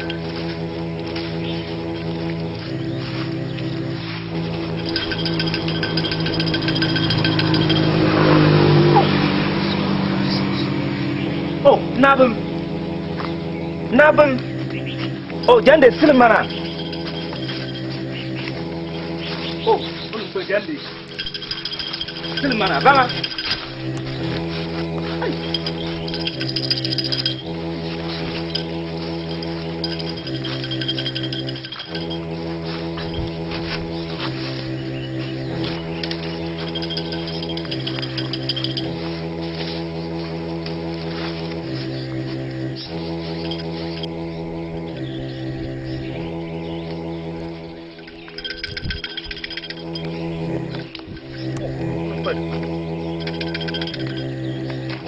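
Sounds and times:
droning keyboard chord: 0.0 - 55.0
low bass line: 0.0 - 55.0.

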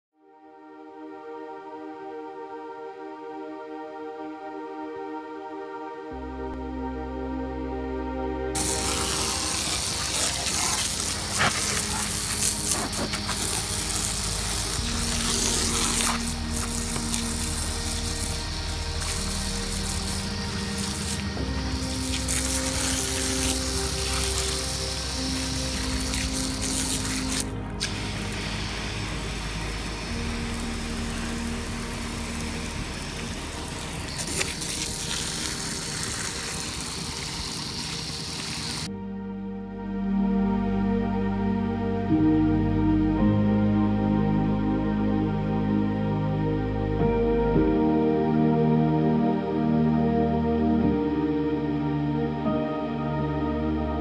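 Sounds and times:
calm ambient music: 0.2 - 54.0
hose spray hissing: 8.6 - 38.9.

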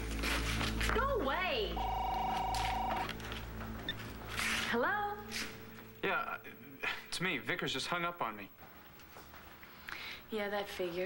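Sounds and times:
short beep: 1.8 - 3.1
telephone ringer trill: 1.8 - 3.1.

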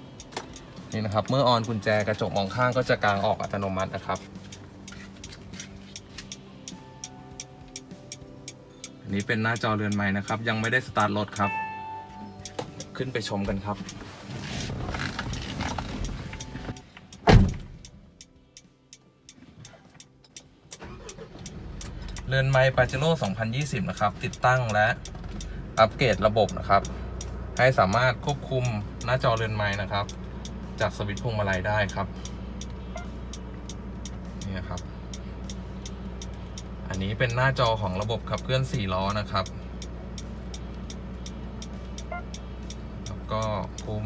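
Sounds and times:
turn signal ticking: 0.0 - 14.1, 14.8 - 44.0
car door thump: 17.2 - 17.8
steady low hum: 31.7 - 37.2.

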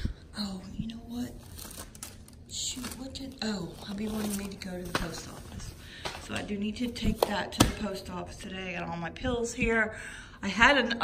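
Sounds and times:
paper crinkle: 1.1 - 6.4
paper envelopes rustling: 1.1 - 7.4.

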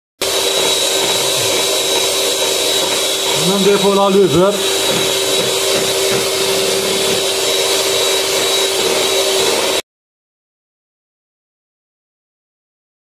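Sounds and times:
electric hand mixer whisking batter: 0.2 - 9.8.

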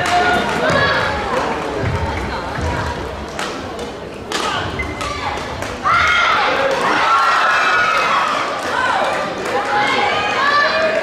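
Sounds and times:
voices in sports hall: 0.0 - 11.0.

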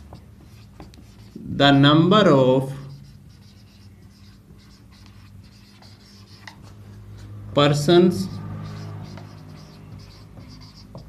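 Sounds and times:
marker squeaking on whiteboard: 0.0 - 1.5, 2.8 - 7.3, 8.1 - 11.0.

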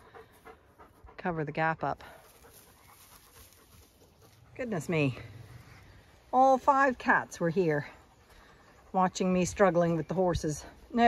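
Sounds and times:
dog panting: 0.0 - 6.0, 7.4 - 10.3.

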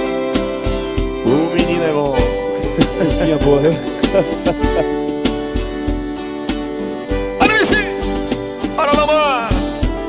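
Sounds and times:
accordion chords: 0.0 - 10.0
acoustic guitar: 0.0 - 10.0
steady low drum beat: 0.0 - 10.0.

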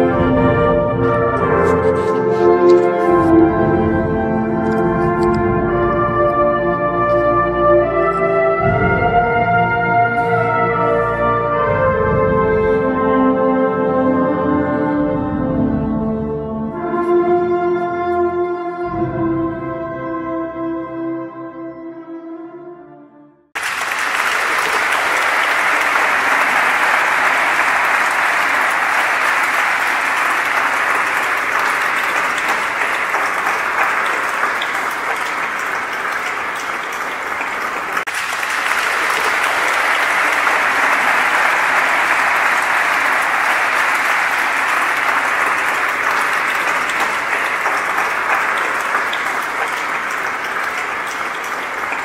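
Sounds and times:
audience applauding: 0.0 - 0.3, 0.9 - 5.4, 23.6 - 52.0.

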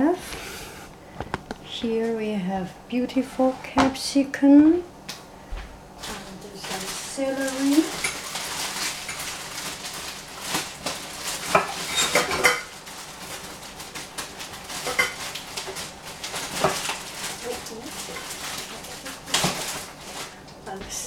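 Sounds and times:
dishes and utensils clinking: 7.7 - 9.3, 11.4 - 12.8, 14.8 - 15.8, 17.9 - 19.9.

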